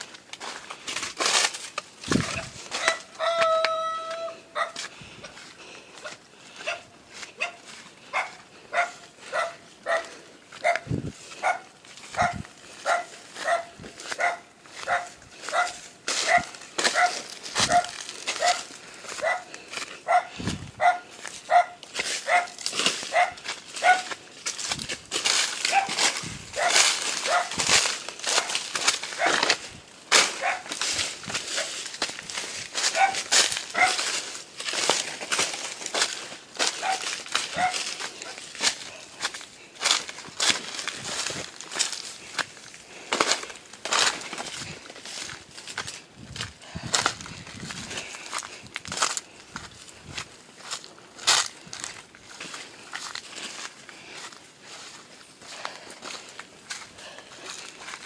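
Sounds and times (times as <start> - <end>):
dry leaves rustling underfoot: 0.0 - 58.0
dog barking: 2.8 - 3.6, 4.5 - 4.8, 6.0 - 24.1, 25.7 - 26.0, 26.6 - 27.6, 29.2 - 29.4, 30.4 - 30.7, 32.9 - 34.0, 36.7 - 38.4.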